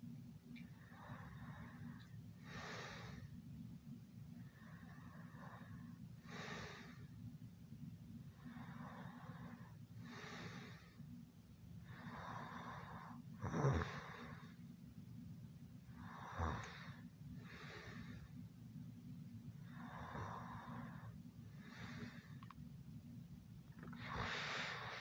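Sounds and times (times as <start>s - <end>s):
steady low hum: 0.0s - 25.0s
heavy sleep breathing: 0.7s - 3.4s, 4.4s - 7.2s, 8.3s - 11.1s, 11.8s - 14.6s, 15.9s - 18.4s, 19.6s - 22.5s, 23.8s - 25.0s.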